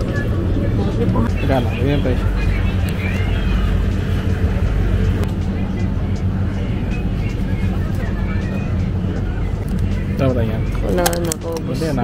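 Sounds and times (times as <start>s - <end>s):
low hum: 0.0s - 11.6s
distant voices: 0.0s - 12.0s
faint background music: 0.0s - 12.0s.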